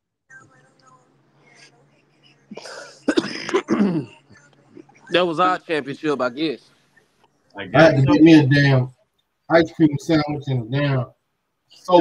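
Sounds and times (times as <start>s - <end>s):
man clearing his throat: 2.6s - 4.1s.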